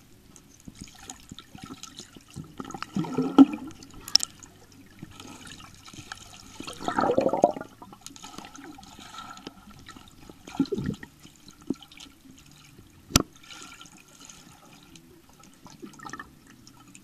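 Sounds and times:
muffled underwater water movement: 0.0 - 17.0
water bubbling: 0.6 - 17.0.

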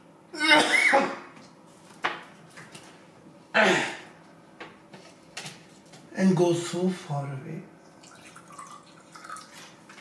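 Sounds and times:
man coughing: 0.5 - 1.3, 3.5 - 4.1.

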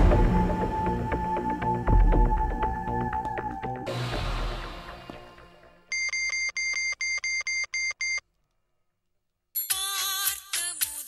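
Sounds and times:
phone keypad beeps: 5.9 - 8.2.

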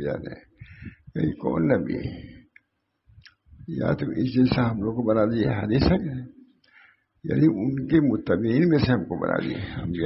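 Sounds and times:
man giving a sermon: 0.0 - 10.0.

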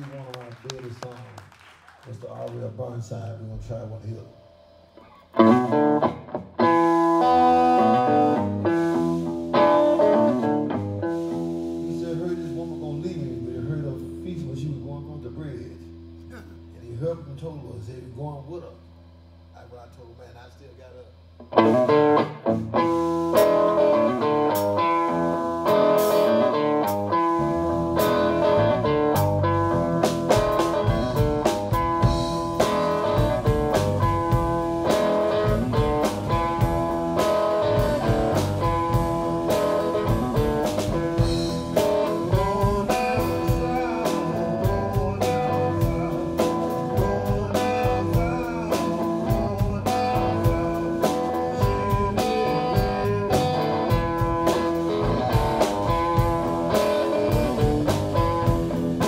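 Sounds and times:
drum kit: 2.0 - 14.6, 21.0 - 59.0
bass guitar: 3.1 - 59.0
electric guitar: 4.4 - 14.8, 21.3 - 59.0.

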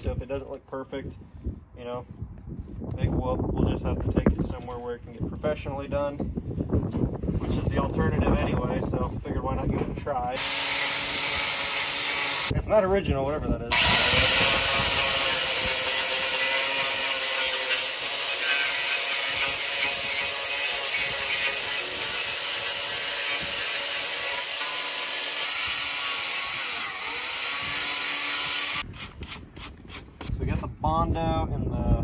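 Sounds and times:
angle grinder sanding metal: 10.4 - 12.5, 13.7 - 30.1.

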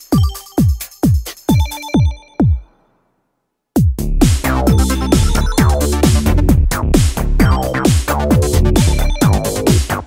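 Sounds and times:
kick drum: 0.0 - 2.7, 3.8 - 10.0
high synth bleeps: 8.8 - 9.6.

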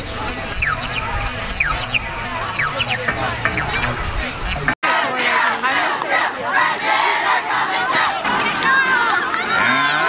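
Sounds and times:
crowd shouting and cheering: 1.0 - 10.0.

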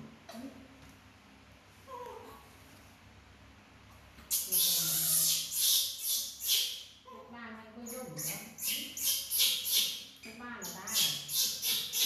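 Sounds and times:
baby monkey call: 4.3 - 7.3, 7.9 - 12.0.

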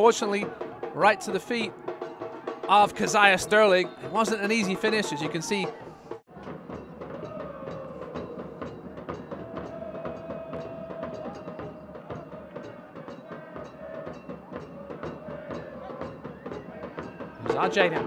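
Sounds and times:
drum beats: 0.0 - 18.0.

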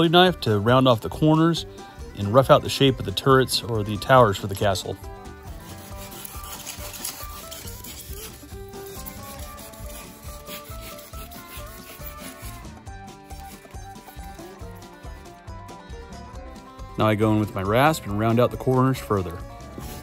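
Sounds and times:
background music: 0.0 - 20.0
utility knife cutting foam: 5.5 - 15.3, 19.7 - 20.0.

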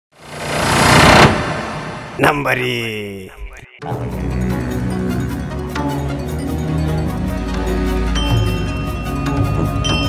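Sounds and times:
whoosh: 0.1 - 2.4
low rumble: 0.2 - 2.2.

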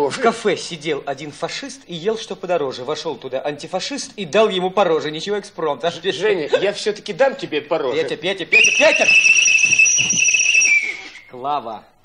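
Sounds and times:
shrill finger whistle: 8.6 - 11.4.

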